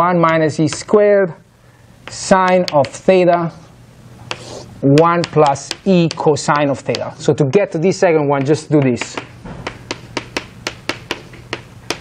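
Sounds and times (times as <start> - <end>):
chalk tapping on chalkboard: 0.2 - 1.0, 2.0 - 3.1, 4.2 - 7.1, 8.4 - 12.0.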